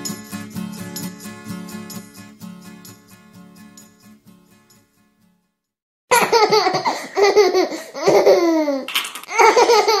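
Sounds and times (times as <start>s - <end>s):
baby laughing: 6.1s - 10.0s.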